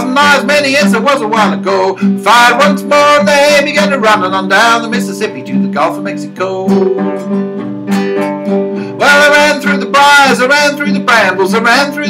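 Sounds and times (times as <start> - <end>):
man singing: 0.0 - 7.1, 8.9 - 12.0
acoustic guitar strumming: 0.0 - 12.0.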